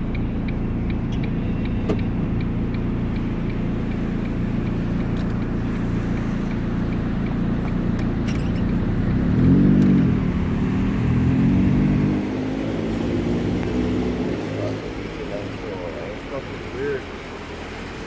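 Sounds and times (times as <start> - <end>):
car road noise on wet pavement: 0.0 - 18.0.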